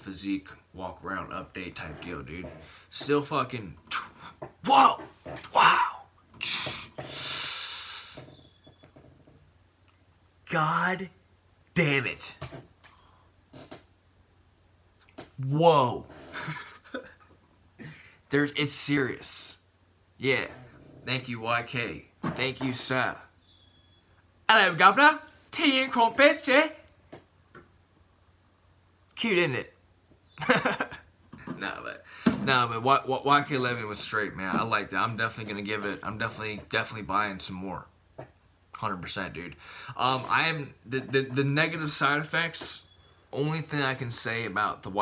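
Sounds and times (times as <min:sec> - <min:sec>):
man exhaling hissing breath: 0:06.4 - 0:08.3.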